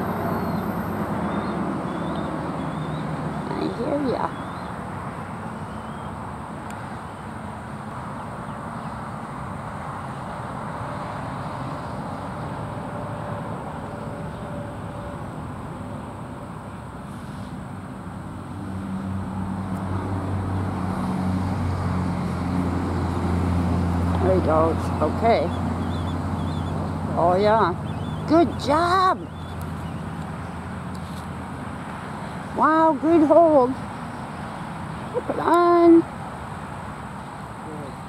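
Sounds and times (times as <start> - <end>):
outdoor background rush: 0.0 - 38.0
vehicle engine hum: 0.0 - 38.0.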